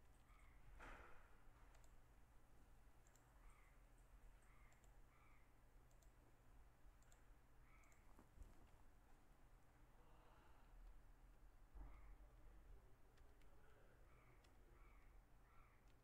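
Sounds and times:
mouse and keyboard clicks: 0:01.7 - 0:02.0, 0:07.0 - 0:08.3, 0:14.3 - 0:14.6.

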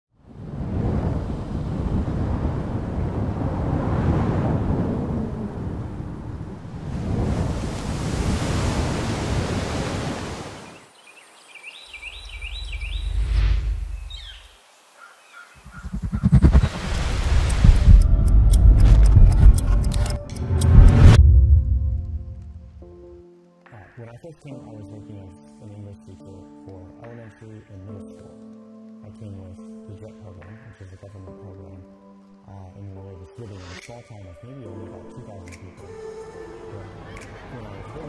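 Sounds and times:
rumbling wash of noise: 0:00.3 - 0:10.4, 0:15.6 - 0:23.1
low swell: 0:03.3 - 0:07.0, 0:15.6 - 0:23.2
music with quick pulse: 0:15.8 - 0:22.7.

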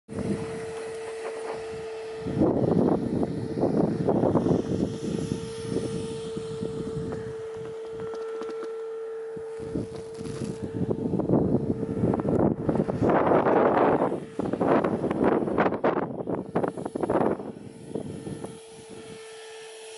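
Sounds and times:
wind buffeting microphone: 0:00.1 - 0:19.3
steady hum: 0:00.1 - 0:19.9.

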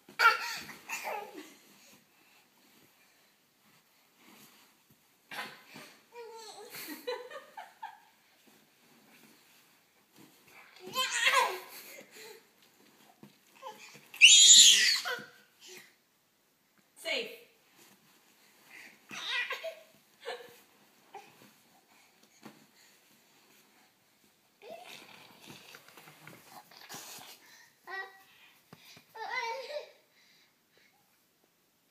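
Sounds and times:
pillow rustling: 0:17.6 - 0:27.4.

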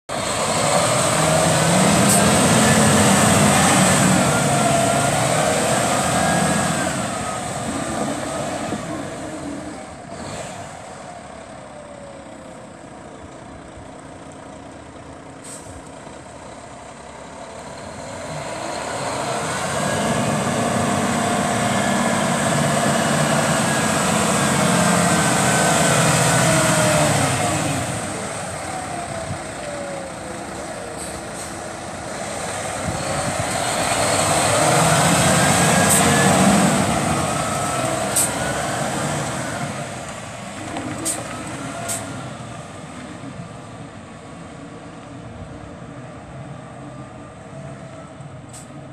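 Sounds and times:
truck diesel engine driving past: 0:00.1 - 0:44.8.

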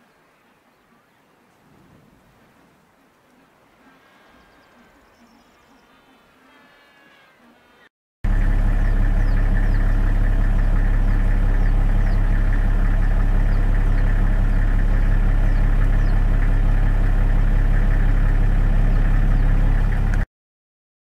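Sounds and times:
engine idling: 0:08.2 - 0:20.3.

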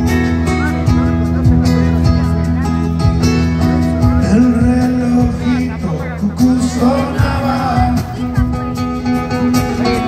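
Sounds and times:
acoustic guitar: 0:00.0 - 0:10.0
electric bass: 0:00.0 - 0:10.0.

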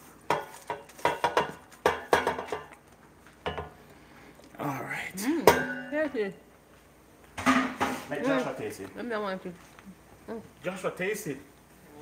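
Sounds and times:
metal pan clanking on a bowl: 0:00.3 - 0:02.8, 0:05.5 - 0:06.2.

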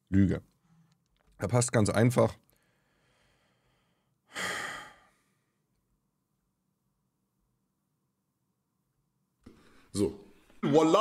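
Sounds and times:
person sighing: 0:04.3 - 0:05.3.

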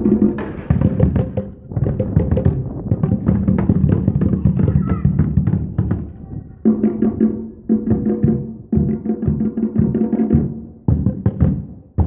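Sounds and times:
plastic tubes struck together: 0:00.0 - 0:06.2
drums beaten with sticks: 0:00.0 - 0:12.0.

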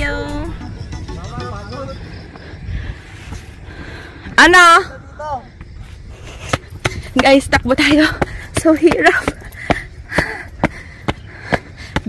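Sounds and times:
wind rumble on microphone: 0:00.0 - 0:11.9.

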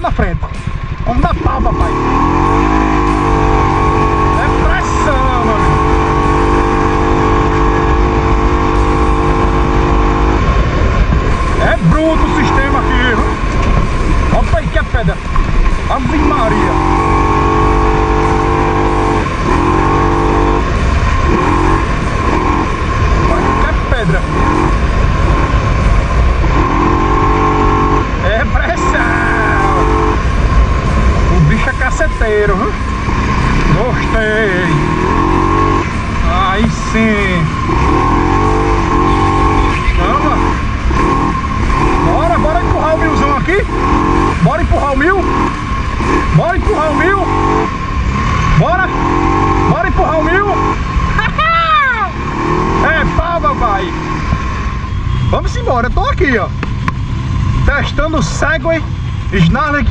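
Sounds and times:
engine running: 0:00.0 - 0:59.9.

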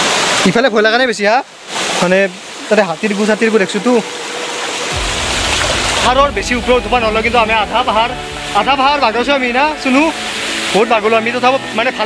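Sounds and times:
stream running over rocks: 0:00.0 - 0:12.0
microphone handling rumble: 0:04.9 - 0:10.4.

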